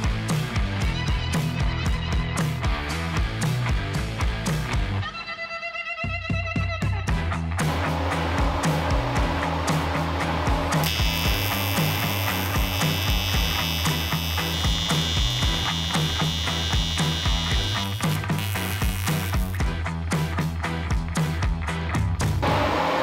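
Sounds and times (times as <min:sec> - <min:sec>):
background music with beat: 0:00.0 - 0:22.4
welding arc buzz: 0:10.8 - 0:19.6.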